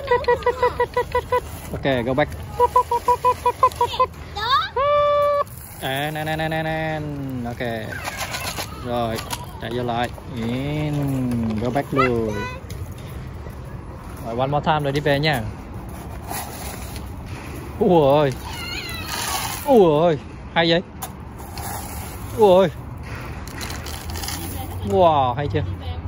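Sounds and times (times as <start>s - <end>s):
metal bucket scraping gravel: 5.5s - 12.4s, 15.8s - 20.0s, 21.3s - 25.0s.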